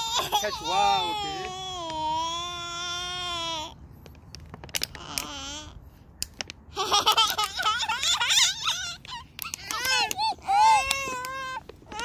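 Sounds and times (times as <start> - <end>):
young child crying: 0.0 - 3.8, 7.1 - 12.0.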